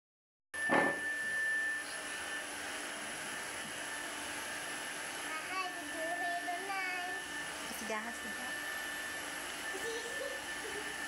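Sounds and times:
electric air pump whirring: 0.7s - 11.0s.

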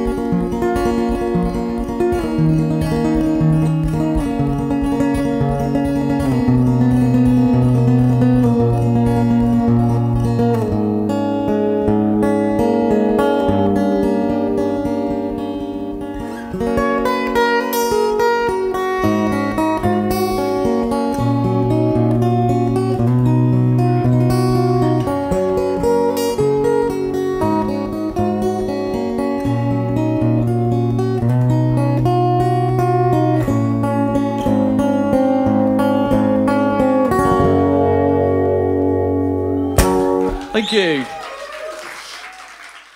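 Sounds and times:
acoustic guitar playing: 0.0s - 41.1s.

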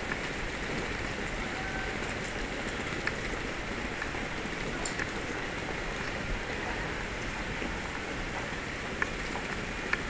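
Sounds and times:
city street ambience hiss: 0.0s - 10.0s.

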